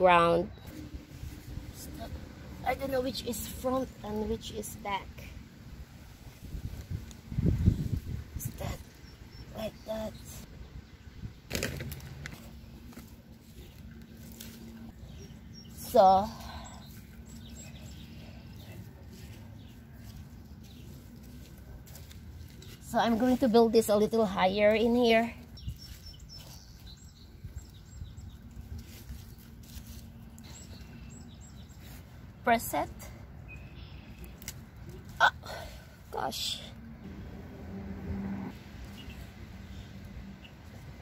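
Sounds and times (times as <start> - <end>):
small birds chirping: 6.6 - 11.5, 12.6 - 36.9, 38.7 - 41.0
hand working soil: 11.9 - 27.7, 28.4 - 32.2
scraping rustle: 28.6 - 30.9.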